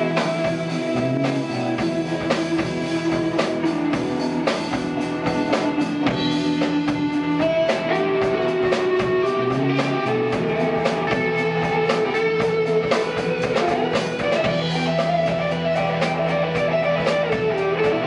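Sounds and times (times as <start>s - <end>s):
drums and cymbals: 0.0s - 18.0s
electric guitar lead line: 0.0s - 18.0s.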